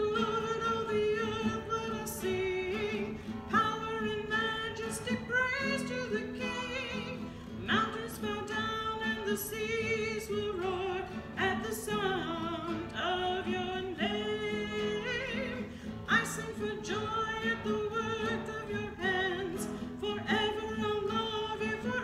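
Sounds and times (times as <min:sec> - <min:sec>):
person singing with vibrato: 0:00.0 - 0:22.0.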